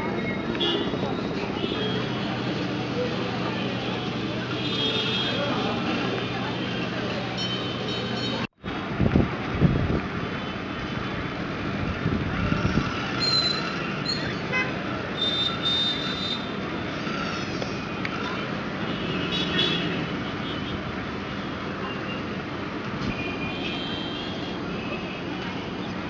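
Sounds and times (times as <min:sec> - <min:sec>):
busy street traffic: 0:00.0 - 0:26.0
vehicle horns beeping: 0:06.5 - 0:08.5, 0:13.0 - 0:16.6, 0:23.0 - 0:25.3.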